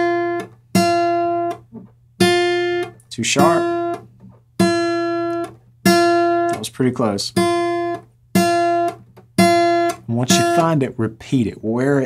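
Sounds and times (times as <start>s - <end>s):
acoustic guitar plucked notes: 0.0s - 11.2s.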